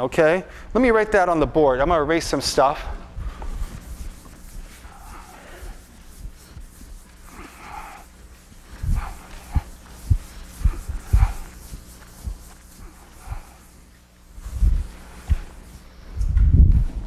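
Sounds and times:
eraser swishing on chalkboard: 3.1 - 16.1
dull low thumps: 8.6 - 12.6, 14.4 - 17.0.

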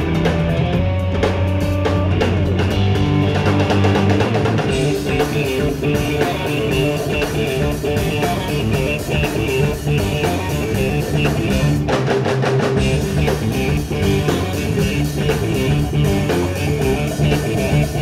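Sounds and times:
drum kit: 0.0 - 18.0
electric bass: 0.0 - 18.0
electric guitar: 0.0 - 18.0.

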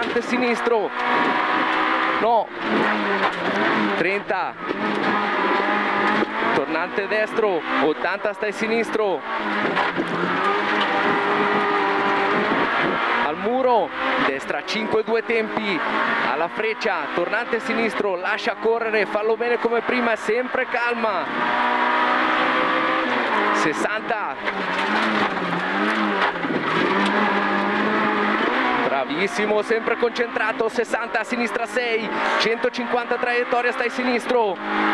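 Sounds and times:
car engine at high revs: 0.0 - 34.9.

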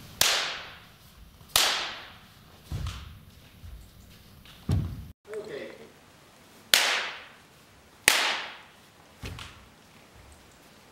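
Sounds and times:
wooden swords cracking together: 0.2 - 0.8, 1.5 - 2.2, 6.7 - 7.4, 8.1 - 9.6.

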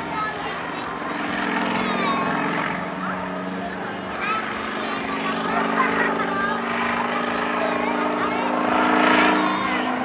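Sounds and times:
people talking: 0.0 - 10.0
propeller plane droning overhead: 0.0 - 10.0.

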